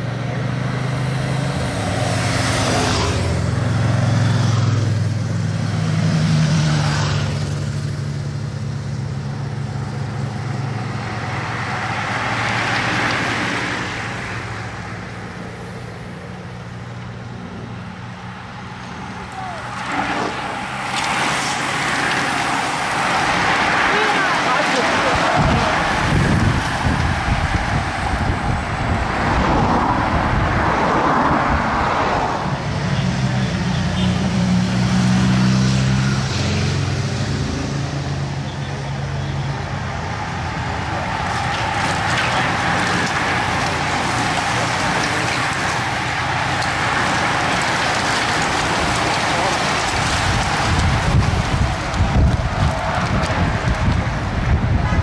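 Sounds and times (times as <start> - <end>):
vehicle engine droning: 0.0 - 55.0
bicycles rushing past: 17.9 - 32.4, 38.5 - 55.0.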